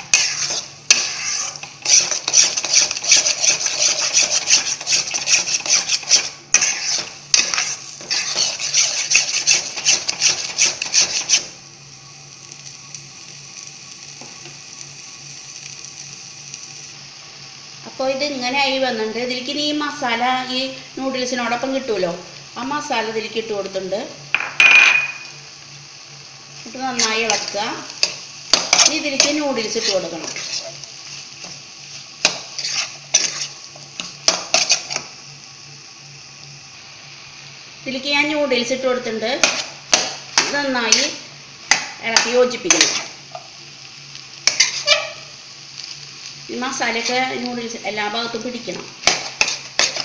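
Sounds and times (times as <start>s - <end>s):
spatula scraping nonstick pan: 0.0s - 11.5s, 26.8s - 35.1s, 39.4s - 41.2s, 42.1s - 43.5s, 44.4s - 45.9s, 49.0s - 50.0s
faint sizzle: 0.0s - 50.0s
food frying hiss: 0.0s - 50.0s.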